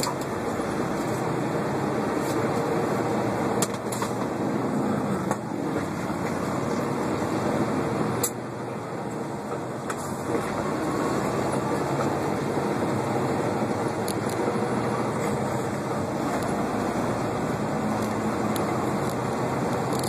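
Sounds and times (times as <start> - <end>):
truck engine and road drone: 0.0 - 20.0.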